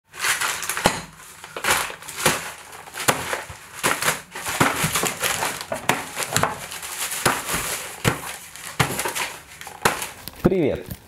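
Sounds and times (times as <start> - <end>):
plastic bags crinkling: 0.1 - 11.0.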